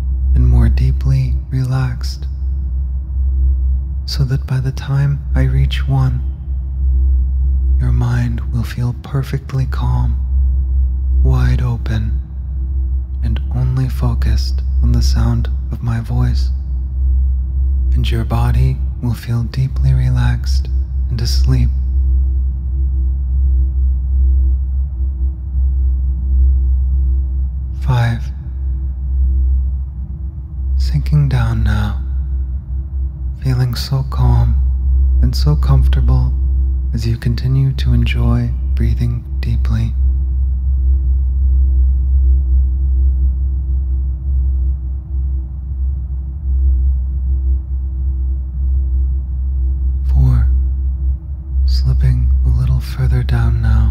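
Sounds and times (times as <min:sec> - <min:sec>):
low hum drone: 0:00.0 - 0:53.9
soft hiss: 0:00.0 - 0:53.9.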